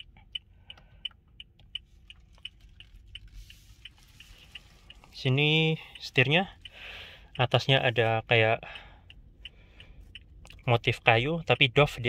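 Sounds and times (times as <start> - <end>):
turn-signal flasher ticking: 0.0 - 12.0.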